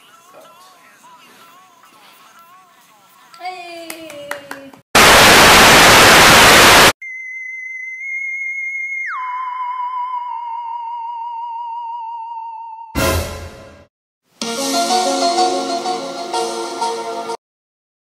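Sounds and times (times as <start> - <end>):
burst of white noise: 5.0 - 7.0.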